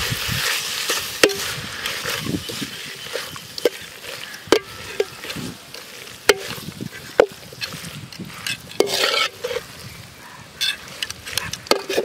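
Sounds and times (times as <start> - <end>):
metal spoon scraping in pot: 0.7 - 9.7.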